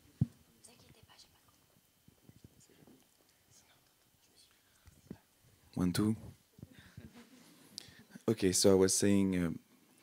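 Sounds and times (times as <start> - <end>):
small room noises: 0.0 - 10.0
faint whispering: 0.6 - 5.4.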